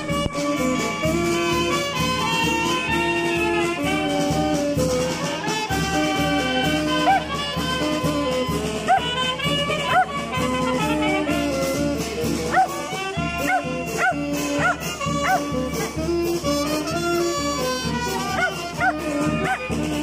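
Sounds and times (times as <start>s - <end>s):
wind band playing: 0.0s - 20.0s
dog barking: 7.0s - 7.3s, 8.9s - 9.1s, 9.9s - 10.2s, 12.5s - 12.8s, 13.4s - 16.0s, 18.3s - 19.7s.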